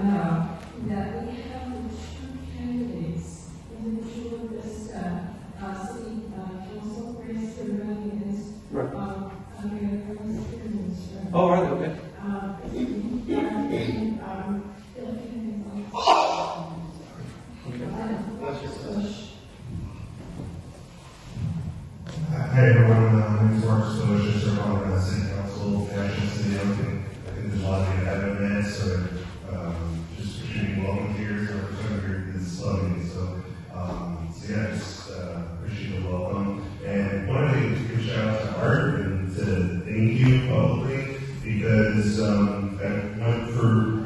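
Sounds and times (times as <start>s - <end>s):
low buzzy hum: 0.0s - 44.0s
man talking over pa system: 11.3s - 12.0s, 13.3s - 14.0s, 22.0s - 44.0s.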